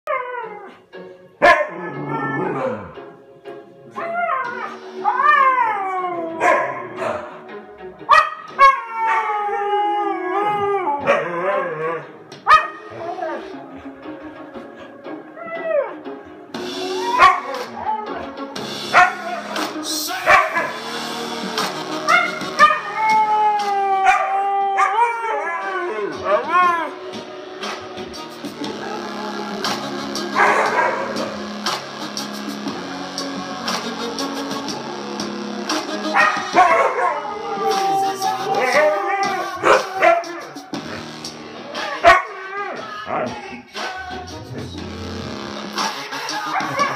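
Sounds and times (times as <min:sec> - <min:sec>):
huskies howling: 0:00.1 - 0:00.8, 0:01.4 - 0:03.2, 0:03.9 - 0:27.2, 0:28.7 - 0:41.1, 0:41.7 - 0:44.4, 0:46.4 - 0:46.9
song through small speakers: 0:00.4 - 0:46.9.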